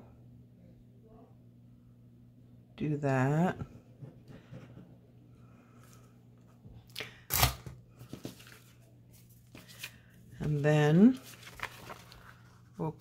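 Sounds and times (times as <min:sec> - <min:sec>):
soft paper rustles: 0:07.9 - 0:13.0
paper brushing: 0:08.2 - 0:13.0.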